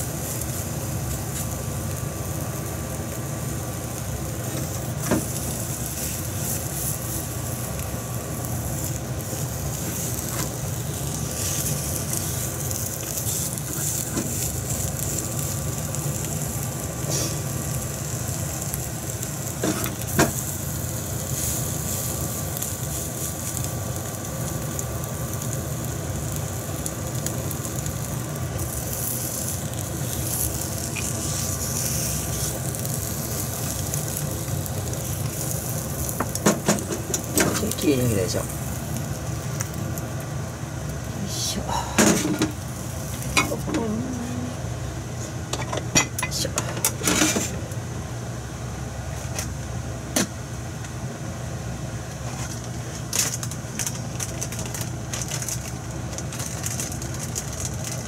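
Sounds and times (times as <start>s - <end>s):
egg sizzling in a pan: 0.0s - 43.8s, 52.4s - 58.0s.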